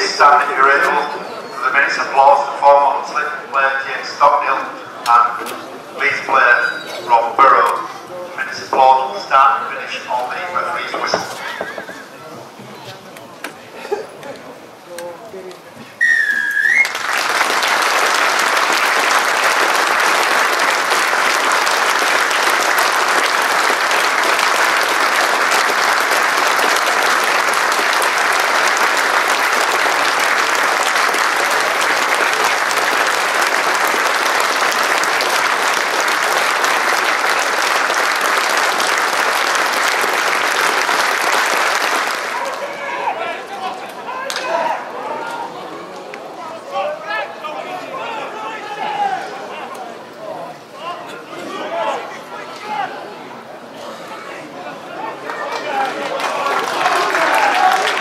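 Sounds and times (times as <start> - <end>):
crowd applause: 0.0 - 7.6, 8.4 - 12.6, 16.1 - 49.5, 53.8 - 58.0
referee's whistle: 16.0 - 17.0.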